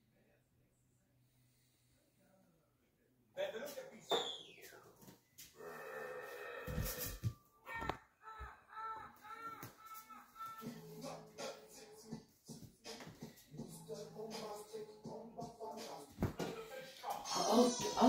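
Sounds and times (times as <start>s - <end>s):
people's voices from tv: 13.9s - 18.0s.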